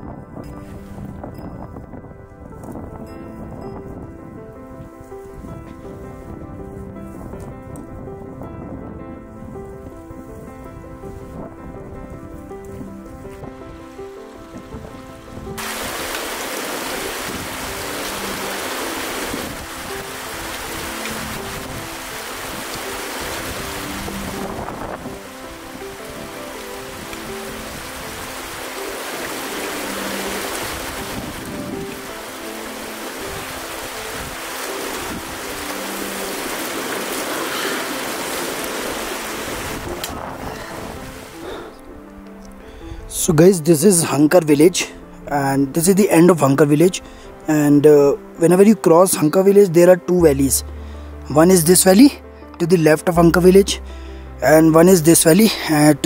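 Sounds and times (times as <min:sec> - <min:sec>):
background music: 0:00.0 - 0:56.0
river flowing over stones: 0:13.6 - 0:42.4.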